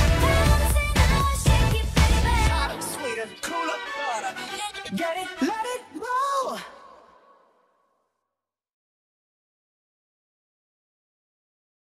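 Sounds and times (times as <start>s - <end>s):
pop song backing music: 0.0s - 6.9s
male pop vocal in reverb: 0.0s - 7.4s.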